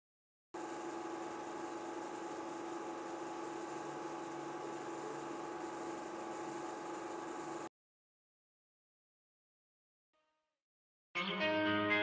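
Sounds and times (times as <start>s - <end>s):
film projector whirring hum: 0.6s - 7.7s.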